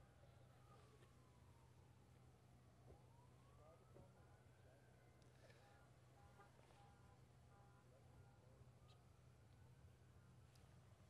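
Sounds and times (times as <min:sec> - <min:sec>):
faint siren wailing: 0:00.0 - 0:06.4.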